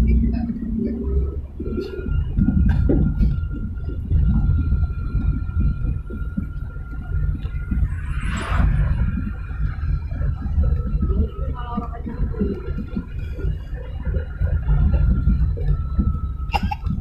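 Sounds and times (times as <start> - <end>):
car engine rumble and road noise: 0.0 - 17.0.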